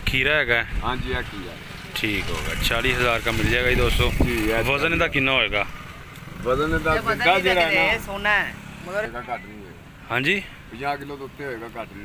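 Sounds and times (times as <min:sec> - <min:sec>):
men talking: 0:00.0 - 0:12.0.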